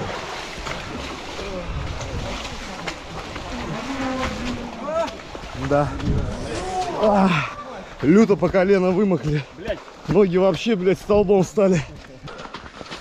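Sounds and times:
feet sloshing through stream water: 0.0s - 13.0s
water rushing: 0.0s - 13.0s.

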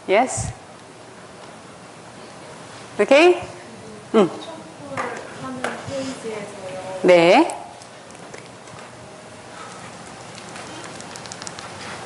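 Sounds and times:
room noise hiss: 0.0s - 12.0s
faint clicks and rustles: 9.6s - 12.0s.

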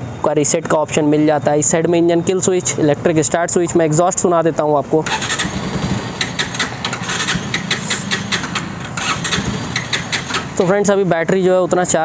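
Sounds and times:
motorcycle engine idling: 5.1s - 11.1s.

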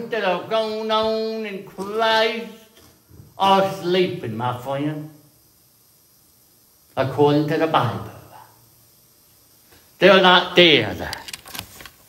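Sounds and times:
man speaking: 0.0s - 2.7s, 3.4s - 5.2s, 7.0s - 8.6s, 10.0s - 11.2s
faint steady hiss: 0.0s - 12.0s.

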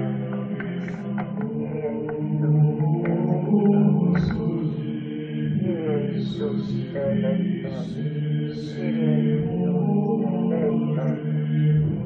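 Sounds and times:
voice chanting a melody: 0.0s - 12.0s.

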